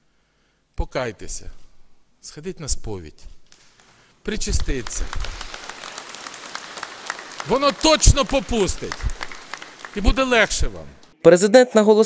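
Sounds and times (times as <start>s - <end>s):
audience applauding: 3.7s - 11.1s.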